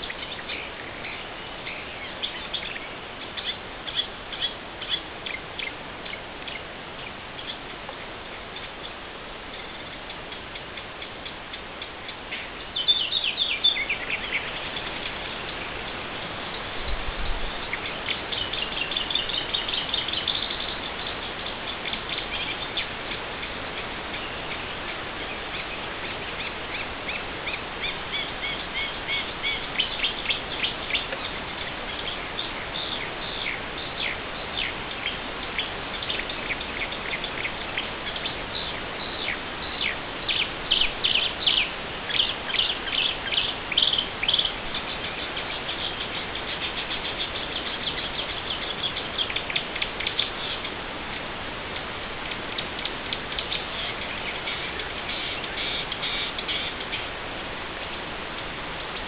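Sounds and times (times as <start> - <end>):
songbirds singing and calling: 0.0 - 59.0
steady background hiss: 0.0 - 59.0.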